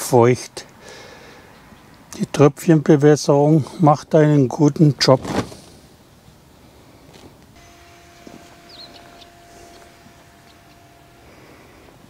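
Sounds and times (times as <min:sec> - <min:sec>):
faint steady hum: 0:05.6 - 0:12.0
short high chirp: 0:08.7 - 0:10.0.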